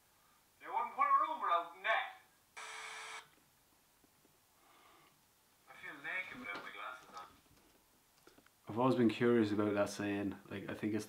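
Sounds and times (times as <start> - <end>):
electronic buzz: 2.6 - 3.3.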